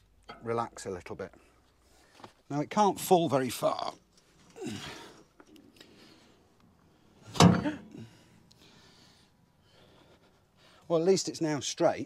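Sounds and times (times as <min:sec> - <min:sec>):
heavy clunk of rudder dropping: 0:07.3 - 0:07.8.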